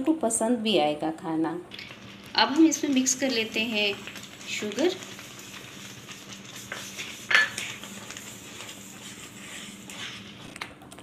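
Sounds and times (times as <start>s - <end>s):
wooden spatula scraping metal pan: 4.5s - 10.5s.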